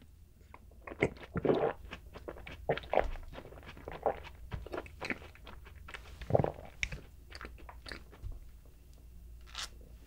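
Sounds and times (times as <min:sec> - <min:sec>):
chewing cake close up: 0:00.4 - 0:08.2.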